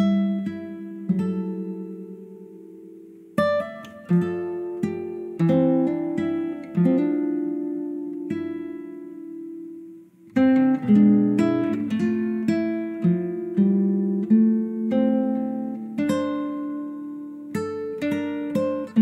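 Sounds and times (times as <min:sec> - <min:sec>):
plucked string instrument: 0:00.0 - 0:19.0.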